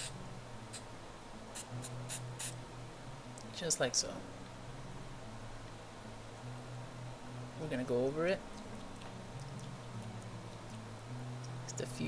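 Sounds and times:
faint low hum: 0:00.0 - 0:12.0
spray can hissing puffs: 0:01.6 - 0:02.6.

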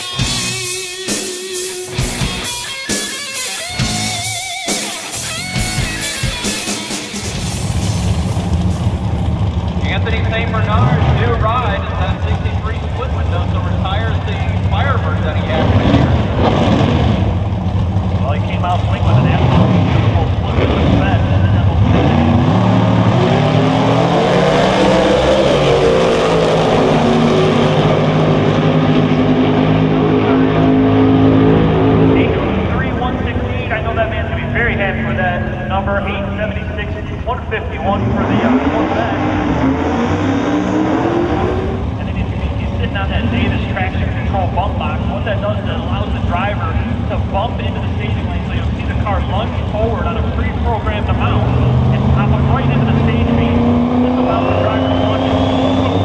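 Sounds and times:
drag car engines revving: 0:00.0 - 0:56.0.

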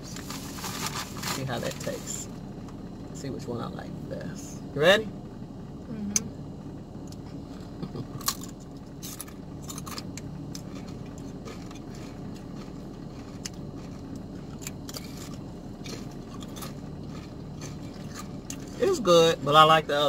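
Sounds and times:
car cabin hum: 0:00.0 - 0:20.0
chips crunching: 0:08.2 - 0:18.8.

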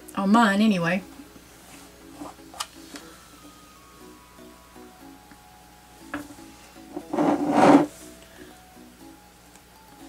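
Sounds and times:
soft background music: 0:00.0 - 0:10.0
canvas scraping on wooden table: 0:07.0 - 0:08.0.

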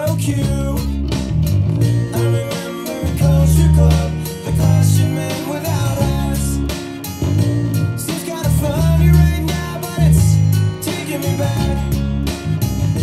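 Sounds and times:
electric bass low notes: 0:00.0 - 0:13.0
rock band with singing: 0:00.0 - 0:13.0.

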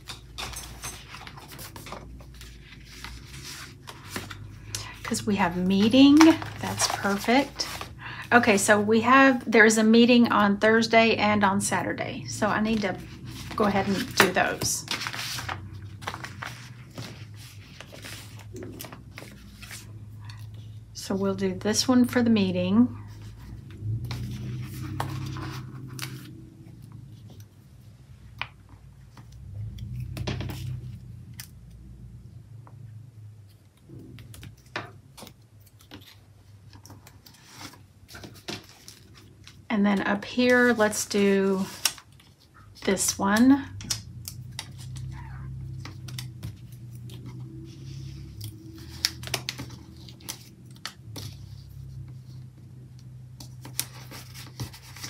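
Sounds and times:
paper sticker sheets rustling: 0:00.0 - 0:22.4, 0:23.0 - 0:27.5, 0:34.0 - 0:55.0
low hum: 0:11.3 - 0:28.2.

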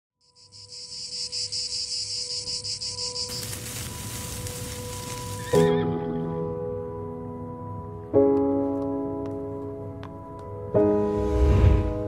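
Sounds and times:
insects chirping: 0:00.2 - 0:05.7.

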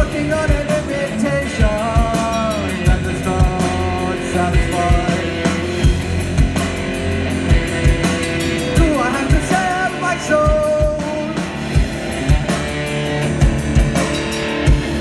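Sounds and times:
live rock band: 0:00.0 - 0:15.0.

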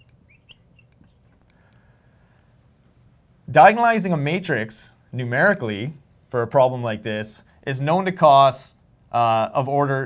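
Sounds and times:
marker squeaking on glass: 0:00.0 - 0:01.4.

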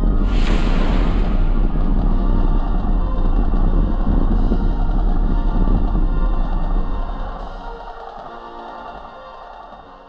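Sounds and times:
dramatic music: 0:00.0 - 0:03.3
deep rumble: 0:00.0 - 0:07.1.

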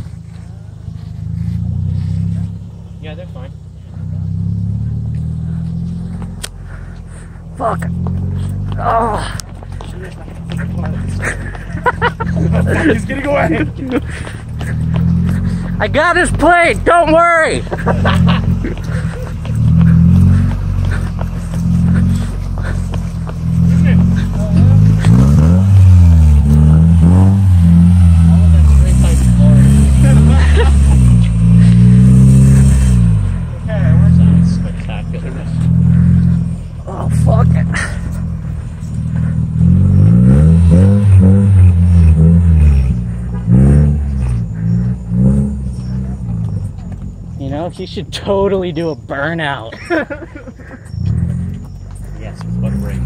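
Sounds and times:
car engine revving: 0:00.0 - 0:53.0.

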